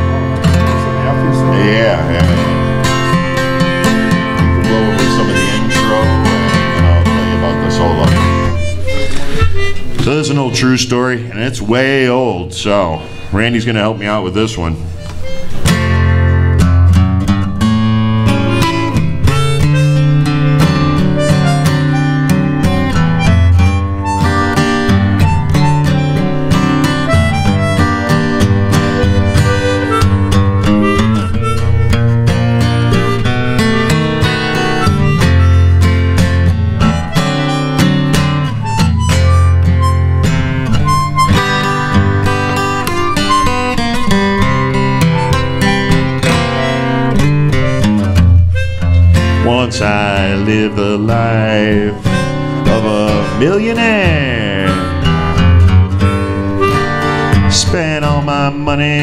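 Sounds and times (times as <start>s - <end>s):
harmonica: 0.0s - 59.0s
strummed acoustic guitar: 0.0s - 59.0s.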